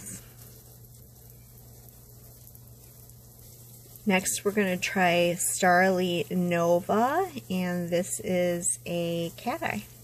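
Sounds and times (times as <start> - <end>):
faint low hum: 0.0 - 10.0
light hiss: 0.0 - 10.0.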